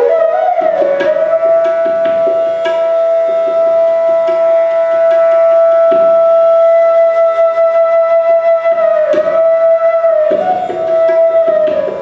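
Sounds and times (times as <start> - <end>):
bamboo flute long note: 0.0 - 12.0
soft tabla strokes: 0.0 - 12.0.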